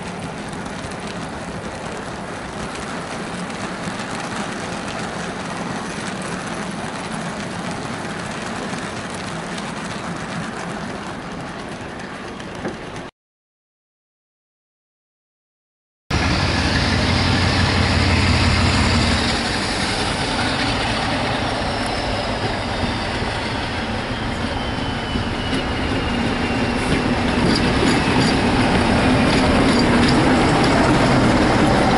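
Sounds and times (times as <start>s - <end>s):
diesel locomotive engine: 0.0s - 13.1s, 16.1s - 31.9s
wheels clicking over rail joints: 0.0s - 13.1s, 24.3s - 31.9s.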